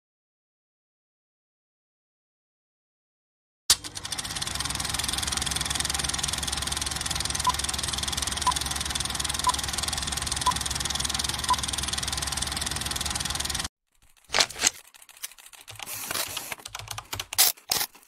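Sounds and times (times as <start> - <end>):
film projector clatter: 3.7 - 16.7.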